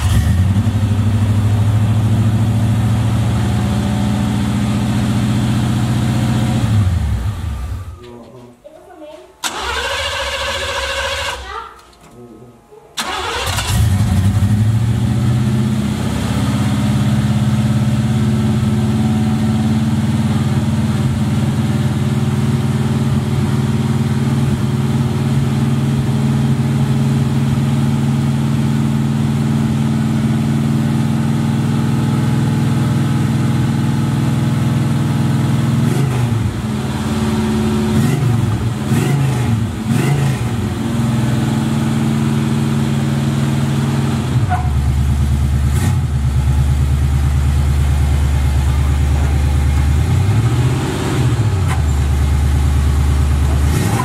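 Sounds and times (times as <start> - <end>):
car engine starting and idling: 0.0 - 8.2, 9.4 - 12.3, 12.9 - 54.0.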